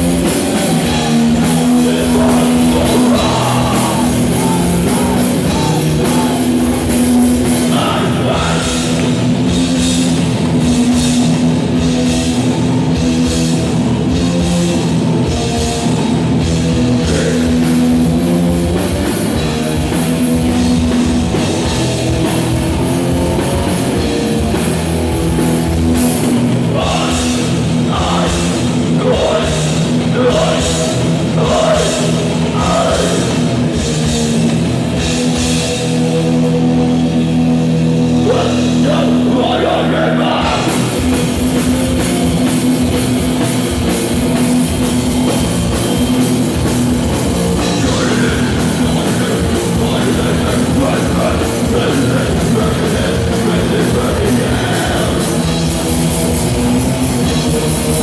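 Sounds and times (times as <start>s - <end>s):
distorted electric guitars chord: 0.0s - 58.0s
heavy metal band playing: 0.0s - 58.0s.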